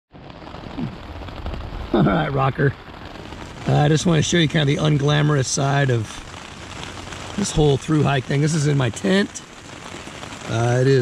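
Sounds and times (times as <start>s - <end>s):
heavy rain on a tent: 0.1s - 11.0s.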